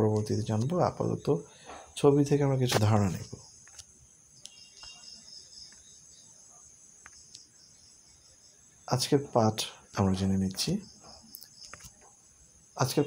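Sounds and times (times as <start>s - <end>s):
insect chirping trill: 0.0s - 13.0s.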